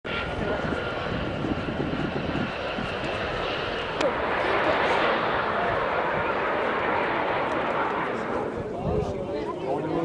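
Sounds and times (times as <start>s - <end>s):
aircraft engine noise: 0.0s - 10.0s
people's voices: 3.9s - 10.0s.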